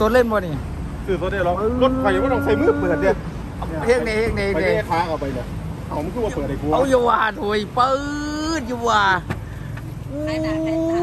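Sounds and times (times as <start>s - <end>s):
man exclaiming in amazement: 1.6s - 3.9s.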